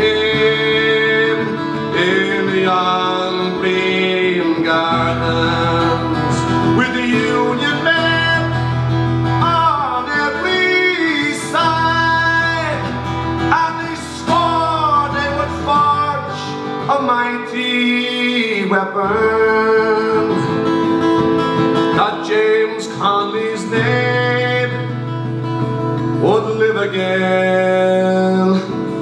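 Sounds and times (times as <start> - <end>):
acoustic guitar: 0.0 - 29.0
man singing folk ballad: 0.0 - 29.0.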